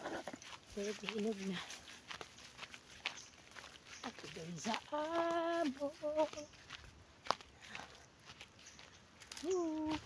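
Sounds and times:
footsteps through vegetation: 0.0s - 10.0s
woman's voice: 0.7s - 1.8s, 4.0s - 6.5s, 9.4s - 10.0s.

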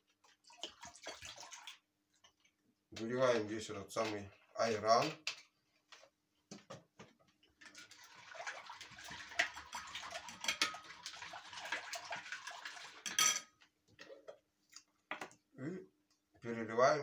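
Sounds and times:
metal spoon stirring in bowl: 7.6s - 13.4s.

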